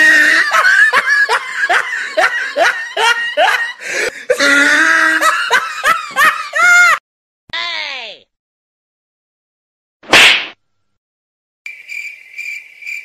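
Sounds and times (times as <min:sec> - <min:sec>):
person laughing hard: 0:00.0 - 0:07.0.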